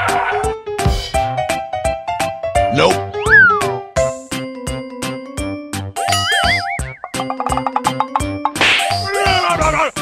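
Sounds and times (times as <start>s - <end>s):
falling-pitch whistles: 3.2s - 3.8s
bouncy music beat: 6.4s - 9.2s.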